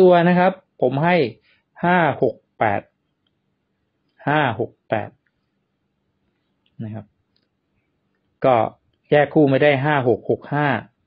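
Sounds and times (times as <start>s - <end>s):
man speaking: 0.0s - 3.0s, 4.2s - 5.2s, 6.8s - 7.2s, 8.4s - 11.0s.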